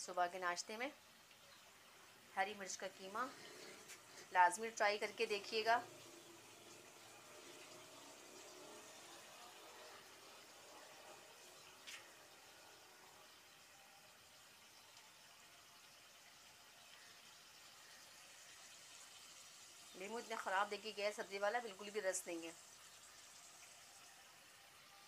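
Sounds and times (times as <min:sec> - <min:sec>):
faint hiss of meat simmering: 0:00.0 - 0:25.0.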